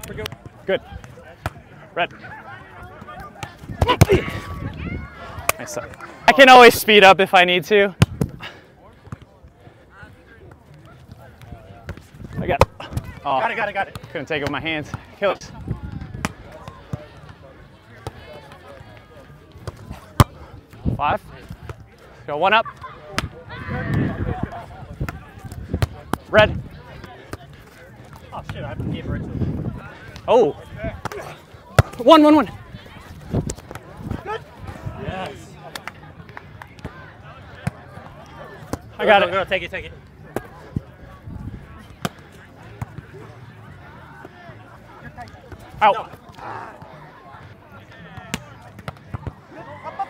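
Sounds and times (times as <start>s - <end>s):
faint voices: 0.0s - 50.0s.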